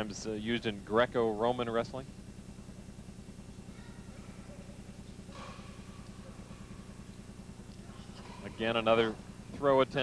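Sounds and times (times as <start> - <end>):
low electrical hum with buzz: 0.0 - 10.0.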